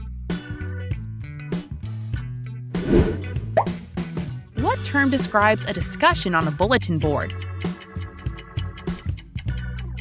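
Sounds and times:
background music: 0.0 - 9.0
quiz transition sound effect: 2.8 - 3.7.

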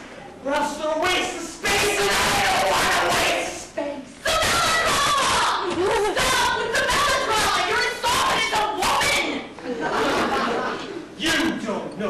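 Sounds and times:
man shouting loudly: 0.8 - 3.5.

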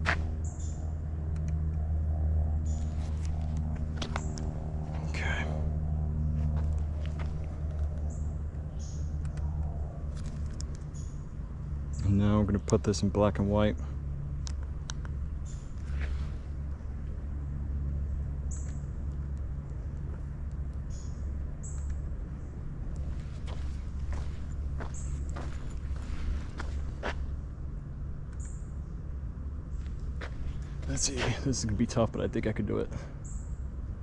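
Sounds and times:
steady low rumble: 0.0 - 34.0
soft footsteps: 2.8 - 5.2, 6.3 - 8.0, 23.0 - 27.4, 29.8 - 31.5.

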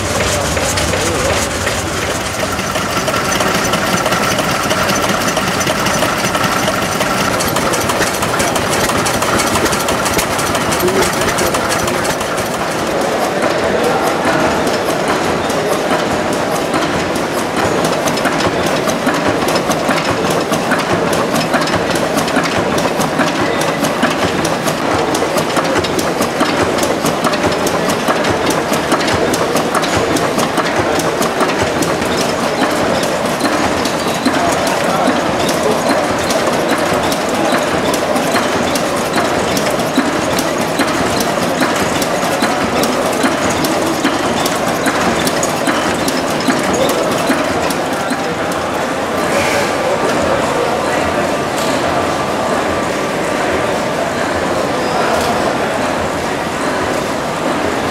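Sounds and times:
stationary engines clattering: 0.0 - 57.9.

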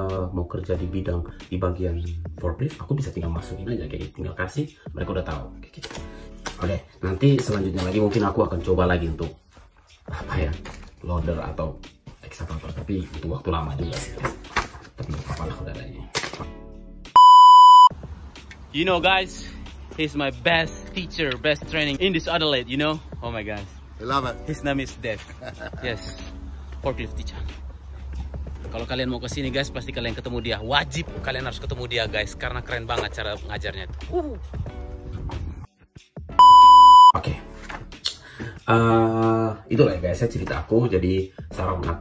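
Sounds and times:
electronic bleep tone: 17.2 - 17.9, 36.4 - 37.2.

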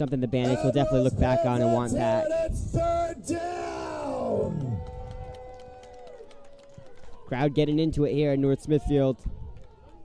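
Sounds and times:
spectators yelling and whooping: 0.5 - 7.5.

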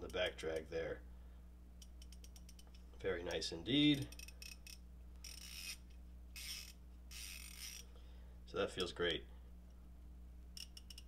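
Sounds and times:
ratchet clicking: 4.0 - 7.9, 10.6 - 11.0.

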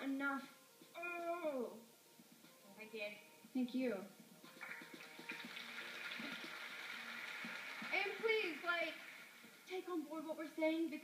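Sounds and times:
audience applauding: 4.6 - 9.5.

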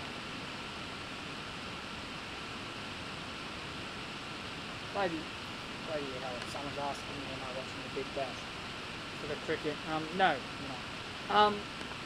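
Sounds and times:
room and microphone hiss: 0.0 - 12.0.

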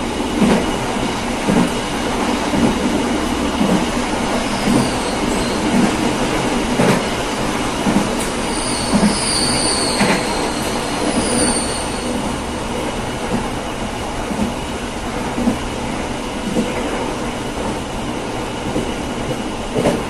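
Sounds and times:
train wheels on rails: 0.0 - 20.0
clickety-clack over rail joints: 0.3 - 20.0
high wheel squeals: 4.3 - 6.0, 8.2 - 12.4.

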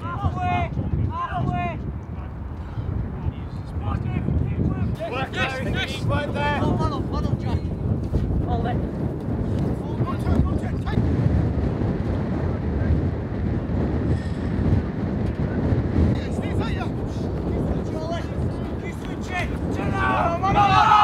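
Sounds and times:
wind buffeting microphone: 0.0 - 21.0
faint shouts of players: 19.4 - 21.0.

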